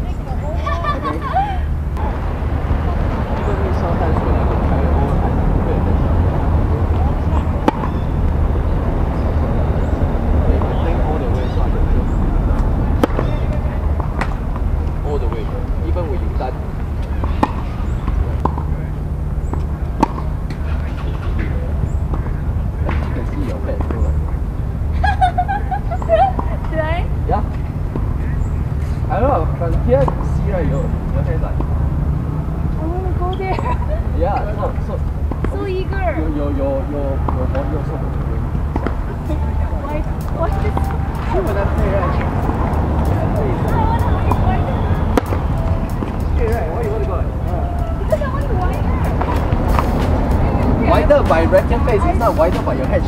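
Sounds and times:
faint voices: 0.0s - 19.1s, 32.7s - 53.0s
low outdoor rumble: 0.0s - 53.0s
tennis balls struck and bouncing: 6.9s - 8.4s, 12.5s - 16.2s, 16.8s - 24.4s, 30.0s - 30.4s, 35.0s - 36.1s, 37.2s - 53.0s.

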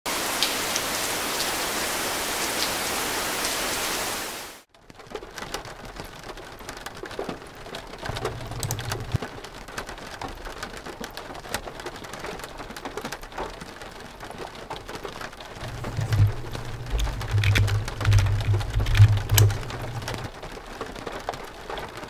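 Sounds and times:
heavy rain: 0.1s - 4.6s, 5.4s - 22.0s
scattered drops and crackles: 4.8s - 13.6s, 14.2s - 22.0s.

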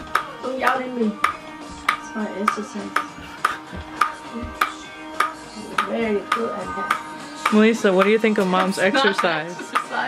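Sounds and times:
ping pong ball bouncing on paddle: 0.0s - 10.0s.

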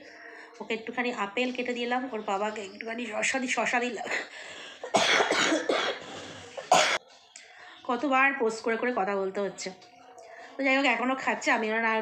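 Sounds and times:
woman coughing: 4.0s - 7.0s.

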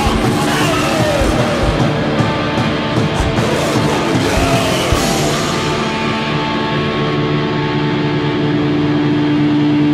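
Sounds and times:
distorted guitar chord ringing: 0.0s - 9.9s.

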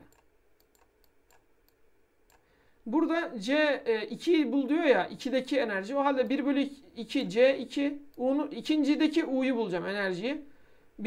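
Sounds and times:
computer mouse clicks: 0.0s - 2.5s
man talking: 2.9s - 10.5s.

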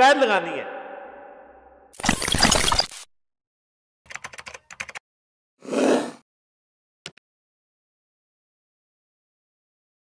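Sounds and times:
keyboard typing clicks: 4.1s - 5.0s.

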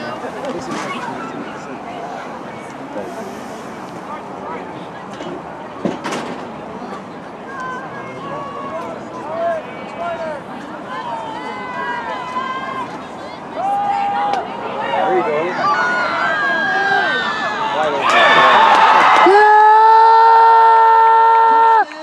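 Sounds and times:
crowd hubbub: 0.0s - 22.0s
spectators shouting: 7.5s - 22.0s.

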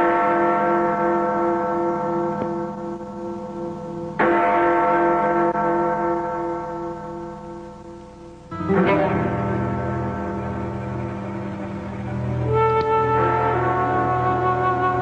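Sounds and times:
large bell tolling: 0.0s - 15.0s.

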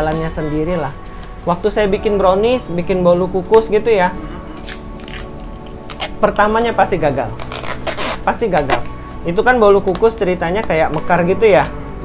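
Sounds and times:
bubble wrap crinkling: 0.0s - 12.0s
soft background music: 0.0s - 12.0s.

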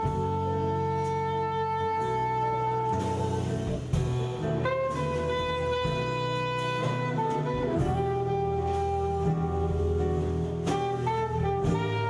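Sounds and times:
double bass: 0.0s - 12.0s
drum kit with cymbals: 0.0s - 12.0s
soprano saxophone sustained notes: 0.0s - 12.0s.

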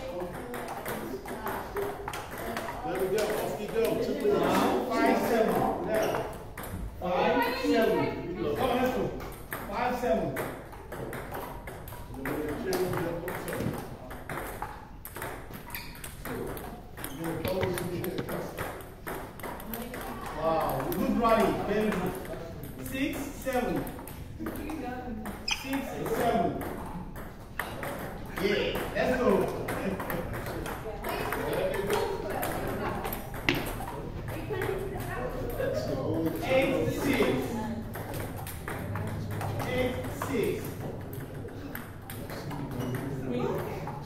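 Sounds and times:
table tennis balls clicking: 0.0s - 7.9s, 8.5s - 44.0s.

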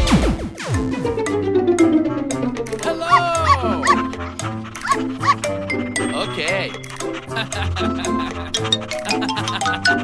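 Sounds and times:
children's music: 0.8s - 10.0s
dog yipping: 3.0s - 5.6s.

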